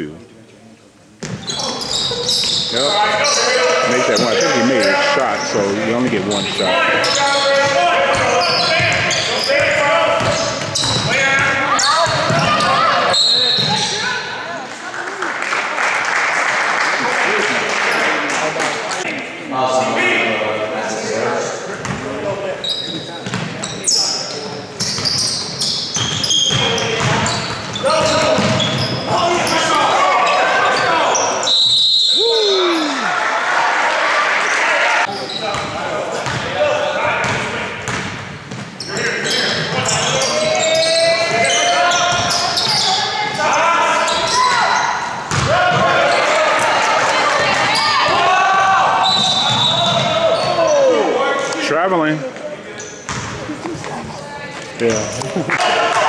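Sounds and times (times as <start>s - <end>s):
short high squeaks: 1.4s - 3.4s
voices and shouts echoing: 1.4s - 15.9s, 16.9s - 38.1s, 38.8s - 56.0s.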